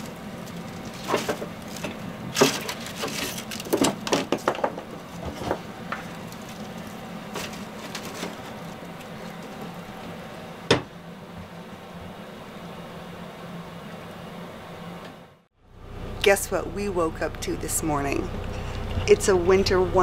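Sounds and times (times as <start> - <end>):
fire crackling: 0.0 - 15.0
knock on stove door: 10.7 - 10.9.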